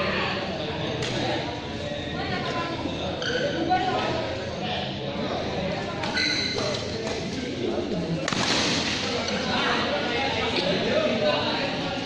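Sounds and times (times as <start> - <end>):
voices in echoing hall: 0.0 - 12.0
shoes squeaking on court: 6.0 - 7.2.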